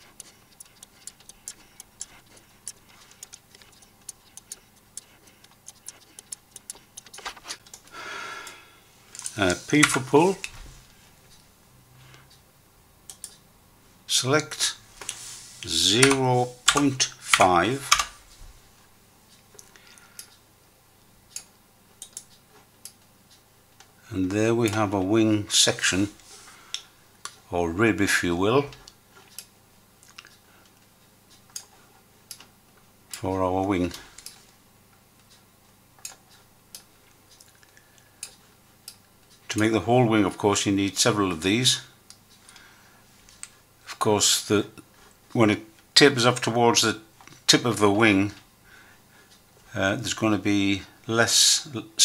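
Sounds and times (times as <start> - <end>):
computer mouse clicks: 0.0 - 7.9, 13.1 - 13.4, 21.3 - 23.0.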